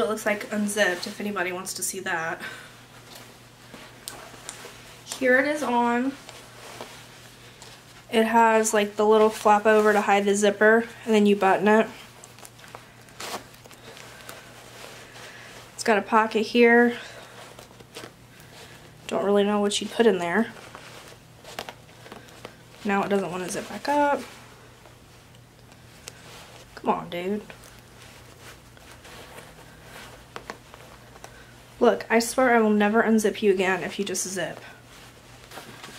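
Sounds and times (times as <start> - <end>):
fabric rustling: 0.0 - 35.9
fabric swish: 2.9 - 18.8, 27.4 - 31.8.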